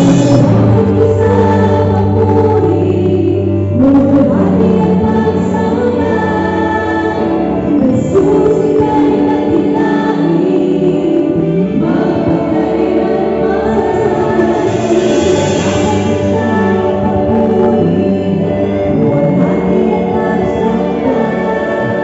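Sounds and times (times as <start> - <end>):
instrumental backing: 0.0 - 22.0
group singing praise song: 4.4 - 22.0.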